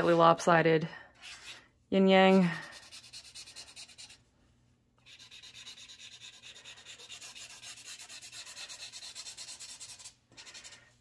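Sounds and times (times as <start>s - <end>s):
pen scratching on paper: 5.0s - 10.7s.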